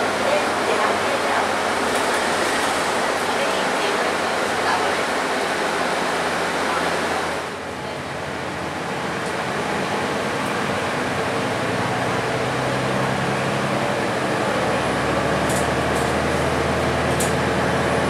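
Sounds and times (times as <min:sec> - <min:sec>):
bus engine low drone: 0:00.0 - 0:18.0
road and air-conditioning hiss: 0:00.0 - 0:18.0.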